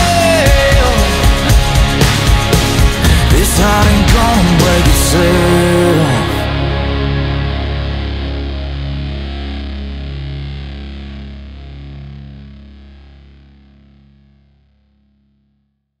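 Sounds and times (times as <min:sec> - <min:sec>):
country-pop final chord ringing: 0:00.0 - 0:09.6.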